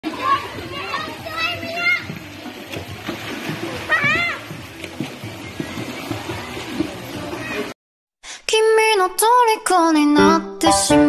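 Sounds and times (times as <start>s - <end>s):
children calling and chattering: 0.0s - 7.8s
children shouting: 0.1s - 2.3s, 3.5s - 4.6s, 5.6s - 7.7s.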